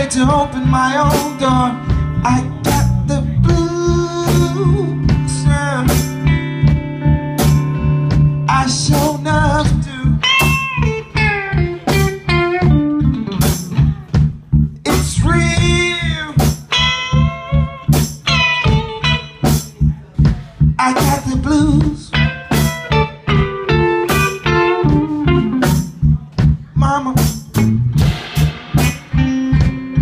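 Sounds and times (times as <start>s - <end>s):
blues band playing: 0.0s - 30.0s.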